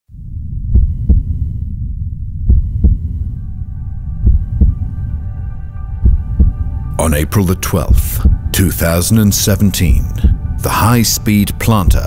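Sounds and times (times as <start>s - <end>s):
heartbeat double thumps: 0.1s - 5.1s, 6.0s - 6.9s, 7.6s - 10.8s
low rumble: 0.1s - 12.0s
sustained synth chord: 0.2s - 11.8s.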